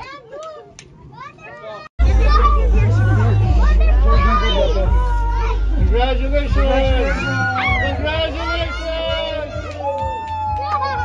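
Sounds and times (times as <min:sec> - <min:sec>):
people cheering and squealing: 0:02.0 - 0:11.0.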